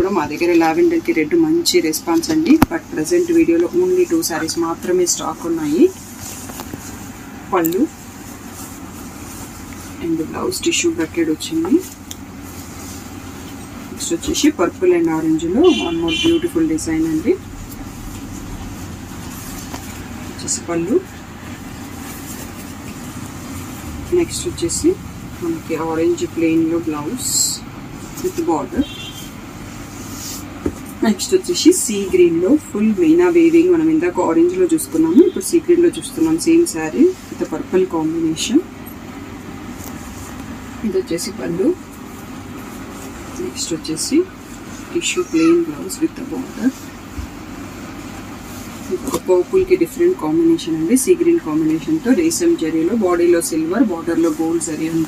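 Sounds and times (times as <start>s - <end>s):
low background rumble: 0.0s - 30.0s
low background hum: 0.0s - 55.0s.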